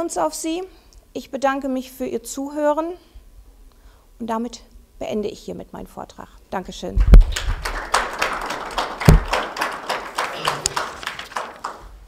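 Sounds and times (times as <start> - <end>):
deep thumps: 7.0 - 7.6, 9.0 - 9.4
audience applauding: 7.0 - 12.0.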